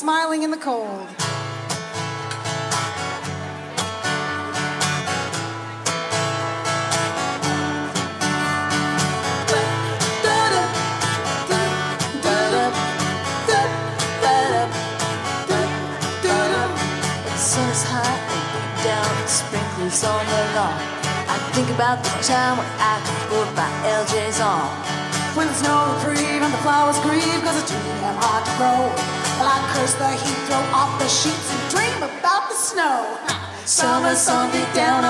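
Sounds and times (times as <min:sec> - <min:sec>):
band playing country song: 0:01.0 - 0:35.0
strummed acoustic guitar: 0:01.2 - 0:32.2, 0:33.2 - 0:35.0
person singing: 0:08.5 - 0:35.0.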